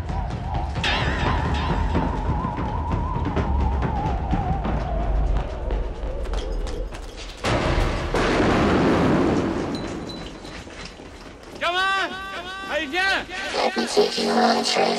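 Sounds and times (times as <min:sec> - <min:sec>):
electronic psytrance music: 0:13.4 - 0:14.9.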